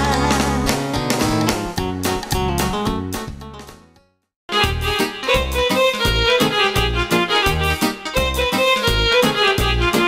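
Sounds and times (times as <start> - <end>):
party music on keyboard: 0.0 - 3.9, 4.5 - 10.0
strummed guitar-like accompaniment: 0.0 - 10.0.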